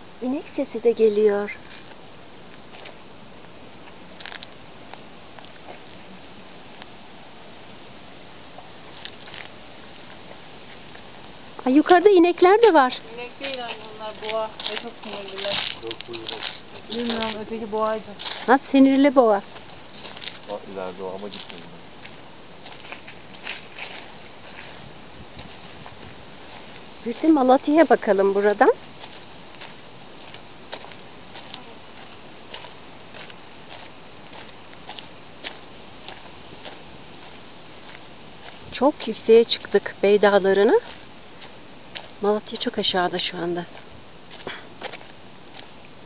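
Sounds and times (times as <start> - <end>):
faint outdoor hiss: 0.0 - 46.0
crunching rustles: 1.4 - 7.1, 8.0 - 46.0
footsteps on dirt track: 1.5 - 6.2, 8.5 - 45.9
wind noise on microphone: 23.2 - 27.8, 38.5 - 39.6.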